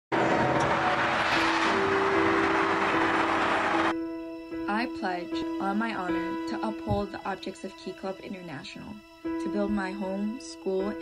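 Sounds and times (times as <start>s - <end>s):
background music notes: 0.2s - 11.0s.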